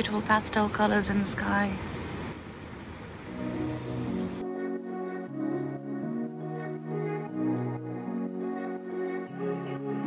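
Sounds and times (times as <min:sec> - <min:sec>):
soft background music: 0:03.3 - 0:10.0.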